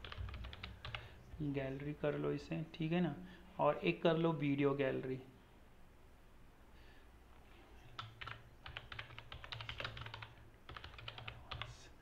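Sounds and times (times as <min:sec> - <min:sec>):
computer keyboard typing: 0:00.0 - 0:01.1, 0:08.0 - 0:11.8.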